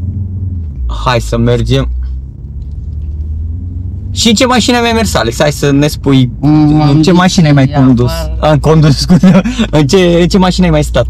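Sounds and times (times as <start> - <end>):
car engine rumble from inside: 0.0 - 11.0.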